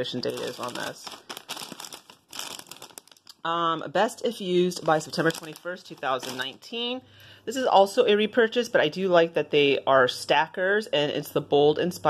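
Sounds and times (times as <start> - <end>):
chip bag crinkling: 0.0 - 3.4, 4.3 - 6.8.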